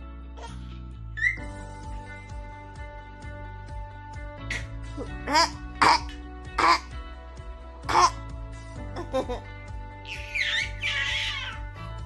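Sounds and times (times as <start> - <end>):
background music: 0.0 - 12.0
baby squealing: 1.2 - 1.5, 10.0 - 11.6
baby babbling: 10.1 - 11.6.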